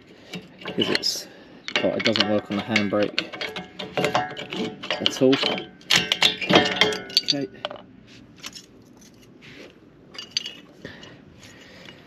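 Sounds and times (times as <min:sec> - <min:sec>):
metallic clinks and rattles: 0:01.7 - 0:09.3, 0:10.1 - 0:12.0.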